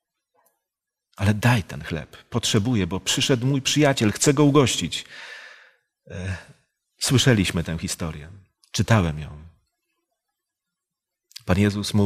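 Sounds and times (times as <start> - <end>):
man breathing: 5.1 - 6.5.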